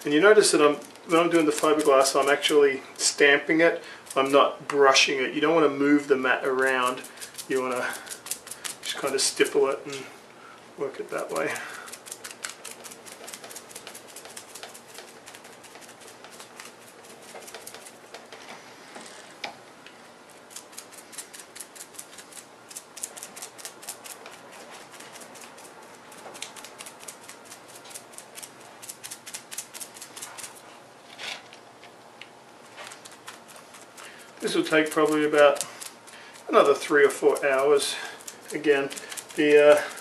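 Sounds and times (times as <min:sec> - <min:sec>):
brush dabbing taps: 0:12.3 - 0:18.6.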